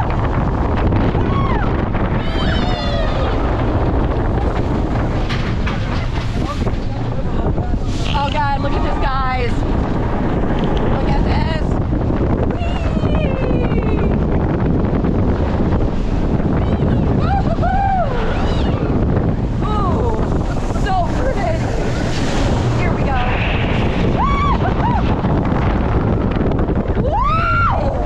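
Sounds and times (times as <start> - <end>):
roller coaster running on track: 0.0 - 28.0
wind rushing over microphone: 0.0 - 28.0
riders screaming: 1.2 - 3.5.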